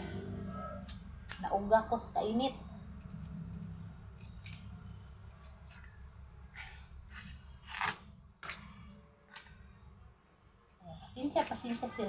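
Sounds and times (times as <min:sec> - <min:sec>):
steady low hum: 0:00.0 - 0:11.8
knife scraping root peel: 0:02.9 - 0:08.1.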